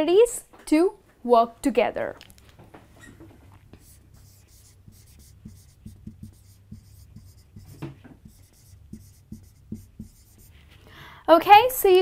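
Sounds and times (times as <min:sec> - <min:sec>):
low room hum: 0:00.0 - 0:12.0
marker writing on whiteboard: 0:03.5 - 0:10.8.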